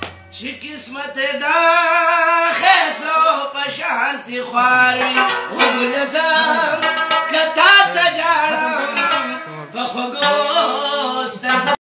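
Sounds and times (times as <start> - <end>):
plucked rabab: 0.0 - 0.5, 4.8 - 11.8
man singing devotional song: 0.3 - 11.8.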